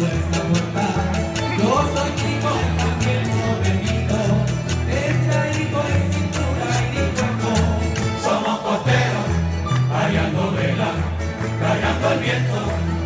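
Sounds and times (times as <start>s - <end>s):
folk string ensemble strumming: 0.0s - 13.0s.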